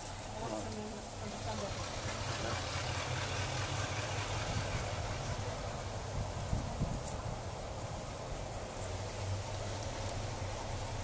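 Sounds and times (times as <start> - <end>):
distant diesel train engine: 0.0 - 11.0
outdoor air hiss: 0.0 - 11.0.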